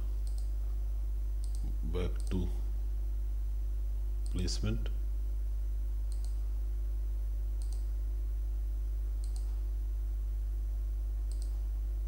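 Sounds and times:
steady low hum: 0:00.0 - 0:12.0
computer mouse clicks: 0:00.2 - 0:00.5, 0:01.4 - 0:02.4, 0:06.1 - 0:06.4, 0:07.6 - 0:07.9, 0:09.2 - 0:09.6, 0:11.3 - 0:11.6.

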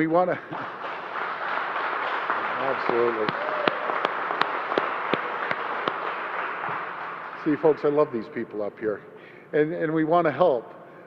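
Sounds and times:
people applauding: 0:00.0 - 0:08.2.

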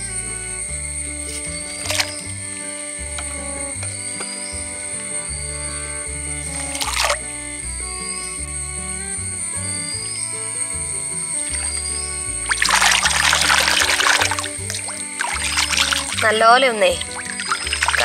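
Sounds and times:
background music with bass line: 0:00.0 - 0:18.0
water splashing in metal pot: 0:06.8 - 0:07.2, 0:12.4 - 0:18.0.

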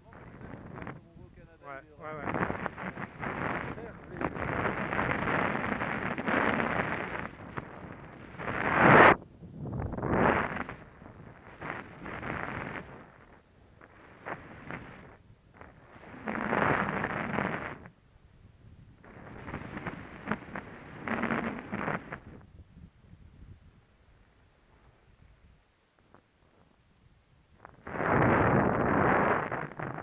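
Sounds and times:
wind buffeting microphone: 0:00.0 - 0:17.8, 0:18.4 - 0:23.9, 0:27.6 - 0:30.0.

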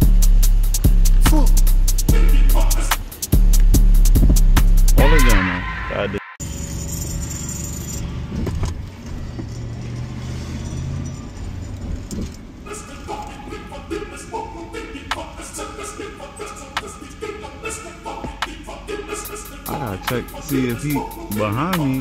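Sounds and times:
hip hop music: 0:00.0 - 0:06.4, 0:12.7 - 0:22.0
car engine rumble: 0:02.6 - 0:04.9, 0:06.4 - 0:15.2.

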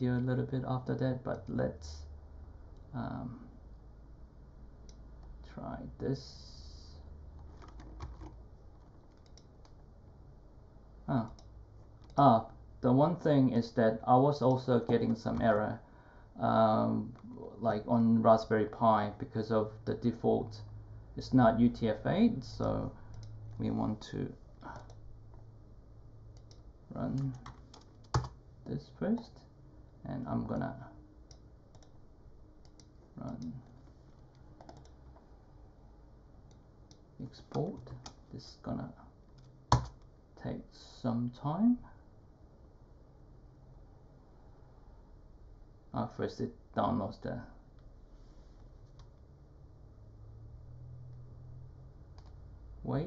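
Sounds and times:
low room hum: 0:00.0 - 0:53.0
computer keys and mouse clicks: 0:07.4 - 0:09.8, 0:11.2 - 0:12.3, 0:24.6 - 0:25.0, 0:26.4 - 0:28.4, 0:31.3 - 0:32.0, 0:32.6 - 0:35.1, 0:39.3 - 0:40.1, 0:52.1 - 0:52.4
mouse and keyboard clicks: 0:34.4 - 0:35.0.

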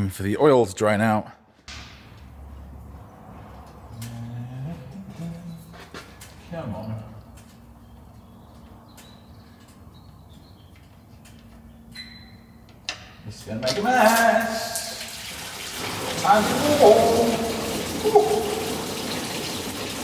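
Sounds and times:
man humming: 0:04.0 - 0:05.6.

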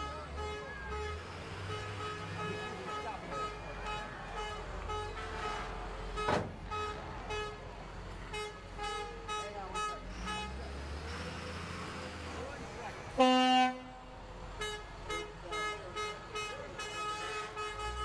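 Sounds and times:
vehicle horn blast: 0:00.4 - 0:07.6, 0:13.2 - 0:14.0, 0:14.6 - 0:18.0.

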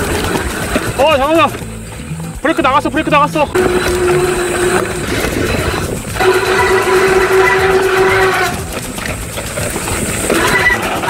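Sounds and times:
tyre and trail noise: 0:00.0 - 0:11.0
bike disc brake squealing: 0:02.5 - 0:11.0
higher brake squeal: 0:03.6 - 0:08.9, 0:10.3 - 0:11.0.

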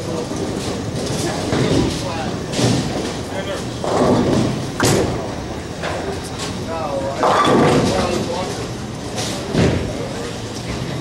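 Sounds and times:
bowling balls rolling: 0:03.8 - 0:06.3.

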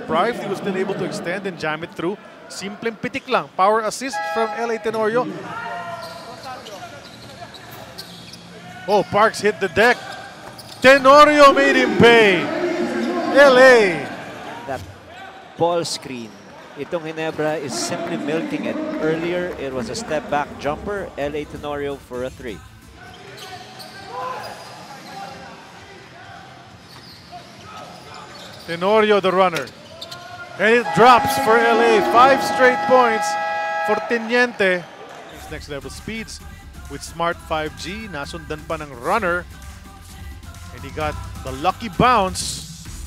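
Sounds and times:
faint players' voices calling out: 0:30.6 - 0:34.5.

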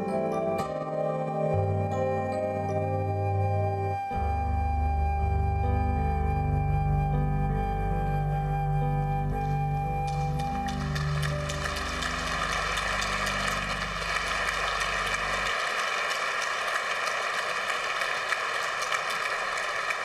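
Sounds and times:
electronic keyboard low chord: 0:00.0 - 0:15.4
flute note: 0:00.6 - 0:12.1
audience applauding: 0:09.7 - 0:20.0.

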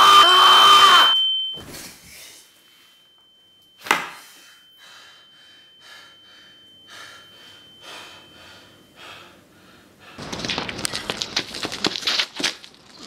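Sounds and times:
heavy breathing: 0:04.2 - 0:10.3.

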